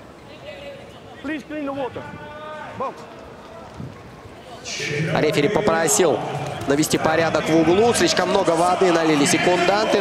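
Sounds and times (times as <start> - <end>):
hall background noise: 0.0 - 10.0
raised voices calling out: 4.6 - 10.0.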